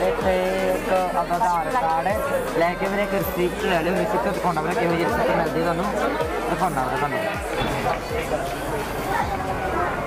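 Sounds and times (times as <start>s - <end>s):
man talking close up: 0.0s - 8.6s
people chattering: 0.0s - 10.0s.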